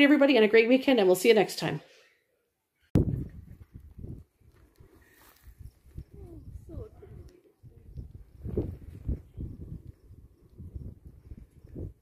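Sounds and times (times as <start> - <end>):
wind on microphone: 3.0 - 12.0
faint voice: 6.1 - 7.9.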